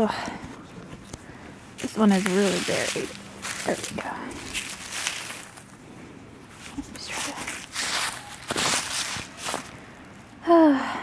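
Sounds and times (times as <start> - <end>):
dry leaves rustling and crunching: 1.8 - 5.8, 6.5 - 10.1.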